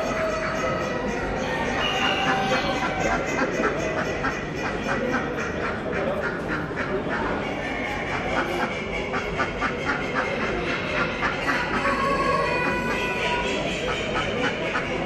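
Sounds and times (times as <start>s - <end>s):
background hubbub: 0.0s - 15.0s
ducks quacking: 0.0s - 15.0s.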